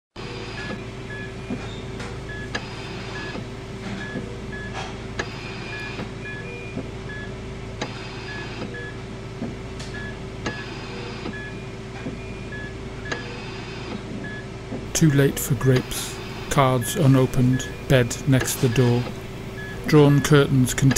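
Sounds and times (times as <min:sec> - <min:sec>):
electrical hum: 0:00.2 - 0:20.9
heart monitor beeping: 0:00.2 - 0:20.9.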